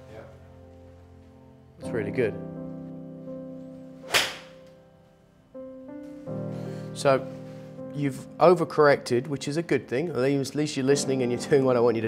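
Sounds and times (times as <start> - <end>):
soft background music: 0.0 - 12.0
golf club swishing and striking ball: 4.0 - 4.6.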